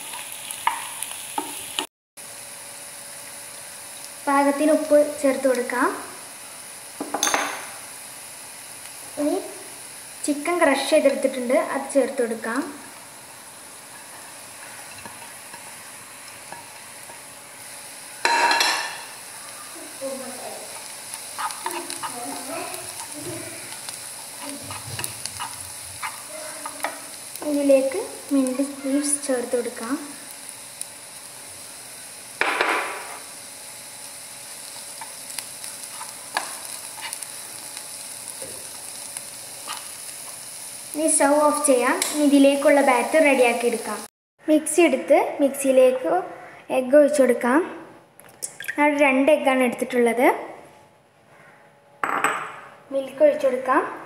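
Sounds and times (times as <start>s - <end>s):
onion sizzling in a pan: 0.0s - 47.6s, 52.9s - 54.0s
spatula scraping a pan: 20.6s - 27.5s, 34.9s - 37.4s, 39.6s - 40.4s.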